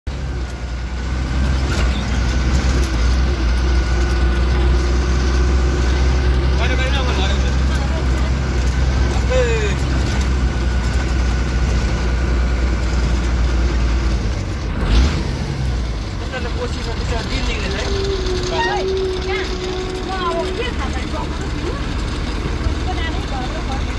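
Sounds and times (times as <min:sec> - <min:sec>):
vehicle engine running: 0:00.0 - 0:23.9.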